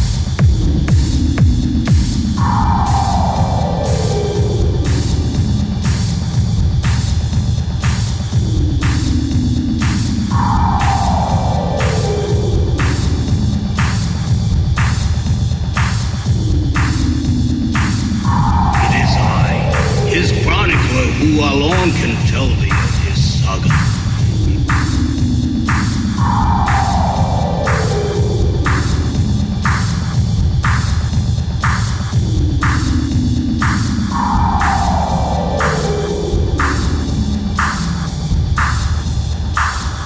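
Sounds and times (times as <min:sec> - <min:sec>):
electronic house music: 0:00.0 - 0:40.0
throbbing bass: 0:00.0 - 0:40.0
synth tone: 0:10.3 - 0:13.6, 0:18.1 - 0:29.6, 0:34.1 - 0:38.1
noisy electronic hit: 0:17.8 - 0:31.0.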